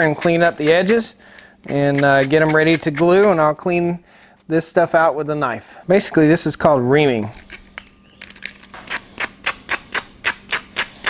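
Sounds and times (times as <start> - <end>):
sandpaper rubbing plastic pipe: 1.7 - 3.4, 8.5 - 11.0.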